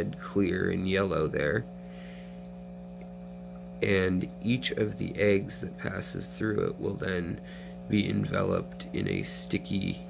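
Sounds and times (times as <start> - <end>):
man speaking: 0.0 - 1.7, 3.8 - 10.0
steady low hum: 0.0 - 10.0.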